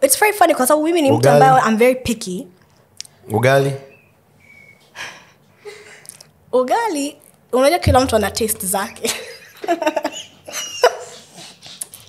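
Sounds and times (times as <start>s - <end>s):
people laughing: 9.0s - 11.4s.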